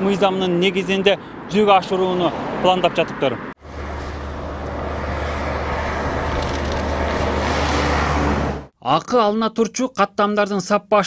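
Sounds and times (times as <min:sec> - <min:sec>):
car approaching: 0:00.0 - 0:08.7
highway traffic rush: 0:00.0 - 0:08.8.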